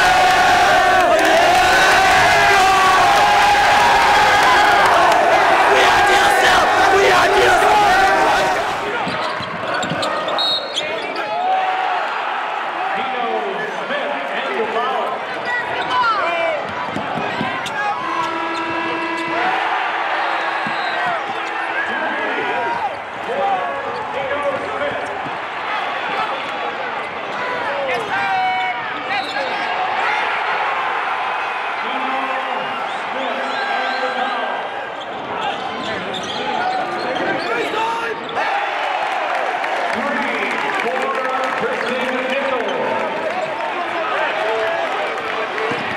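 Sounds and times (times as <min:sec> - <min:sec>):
crowd noise and shouting: 0:00.0 - 0:45.9
sneakers squeaking: 0:08.8 - 0:11.4, 0:16.8 - 0:19.6, 0:20.4 - 0:21.9, 0:34.9 - 0:38.4.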